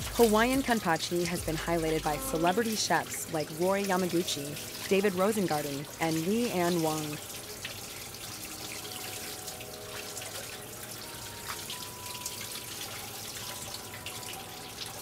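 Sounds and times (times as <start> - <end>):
faucet water splashing in sink: 0.0 - 15.0.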